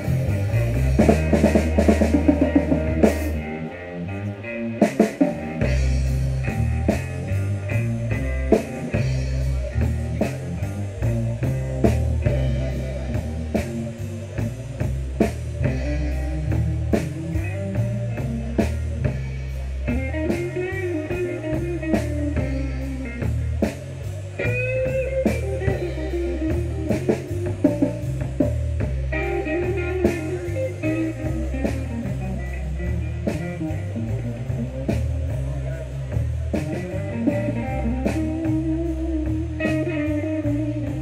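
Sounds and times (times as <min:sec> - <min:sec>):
bass line: 0:00.0 - 0:41.0
drum kit beat: 0:00.0 - 0:41.0
electric guitar: 0:00.0 - 0:41.0.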